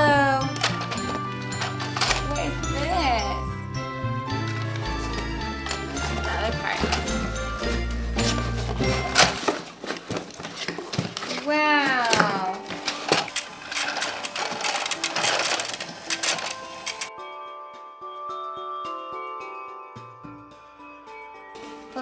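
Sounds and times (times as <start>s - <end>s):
background music: 0.0s - 10.0s, 11.1s - 22.0s
loose balls clattering: 0.0s - 17.1s
plastic toy clicking and rattling: 0.5s - 3.4s, 4.5s - 7.4s, 9.0s - 17.1s.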